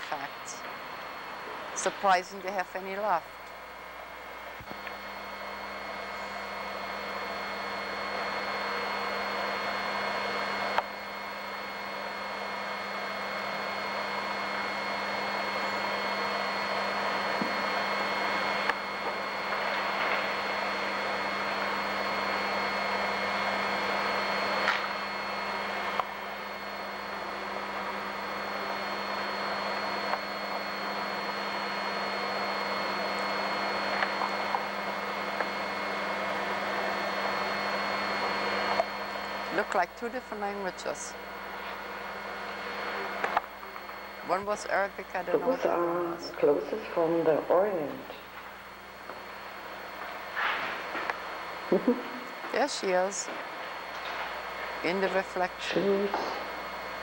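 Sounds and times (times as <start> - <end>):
steady hum: 0.0 - 57.0.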